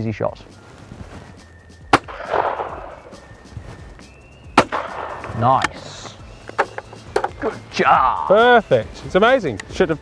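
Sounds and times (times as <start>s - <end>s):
shotgun shots: 1.9s - 3.2s, 4.6s - 5.8s.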